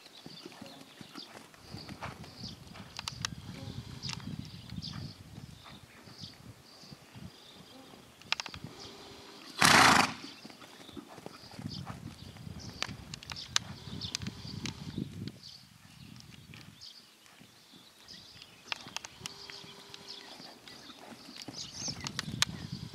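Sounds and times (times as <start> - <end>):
hooves thudding on sand: 0.0 - 22.9
sharp clicks: 2.8 - 4.8, 8.2 - 8.7, 12.6 - 15.4, 18.4 - 22.6.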